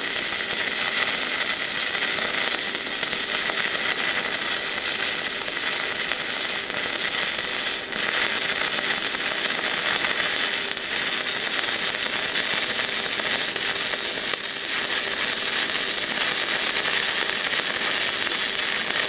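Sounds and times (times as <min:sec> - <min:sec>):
stick welding arc: 0:00.0 - 0:19.0.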